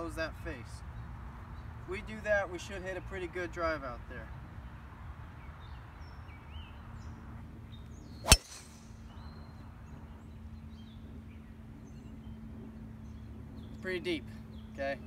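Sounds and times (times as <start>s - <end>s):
golf club striking ball: 8.2s - 9.0s.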